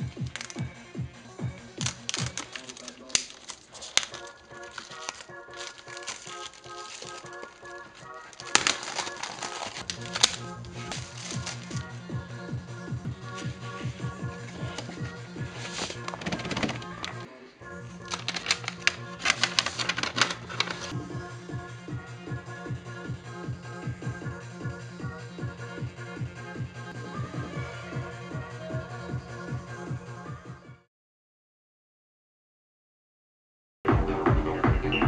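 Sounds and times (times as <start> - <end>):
plastic wrap tearing and crackling: 0.0 - 0.8, 1.4 - 12.1, 13.3 - 17.3, 18.0 - 21.0
electronic music with bass: 33.9 - 35.0.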